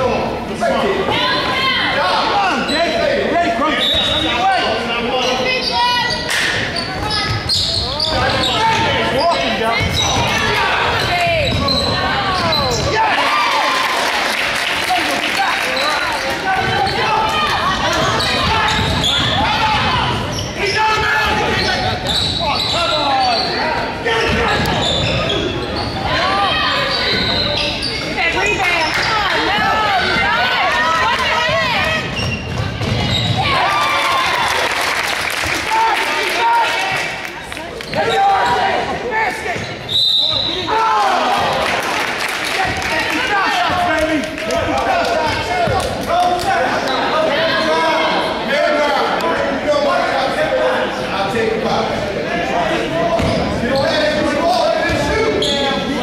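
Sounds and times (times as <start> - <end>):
echoing voices in hall: 0.0 - 56.0.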